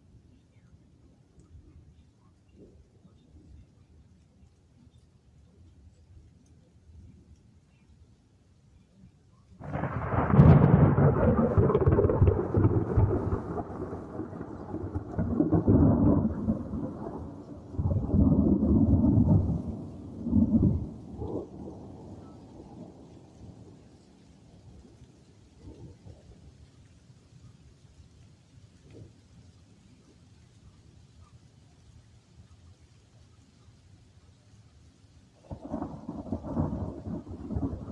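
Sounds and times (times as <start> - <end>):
thunder crack: 9.6 - 22.2, 35.5 - 37.9
rolling thunder rumbles: 9.6 - 26.6, 35.4 - 37.9.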